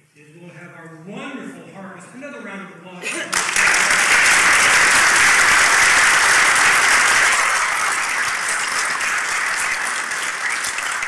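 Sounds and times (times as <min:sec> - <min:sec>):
audience applauding: 0:03.0 - 0:11.0.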